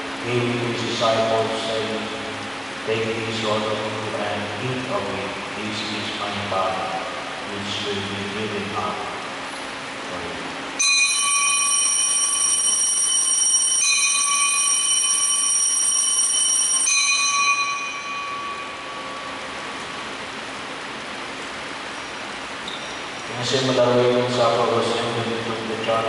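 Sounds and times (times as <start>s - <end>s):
altar bells ringing: 10.8s - 20.3s.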